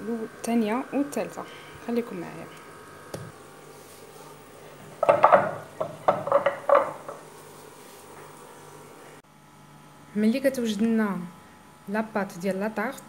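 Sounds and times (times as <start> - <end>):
faint background hum: 0.0 - 13.0
kitchenware knocking on counter: 5.0 - 7.2.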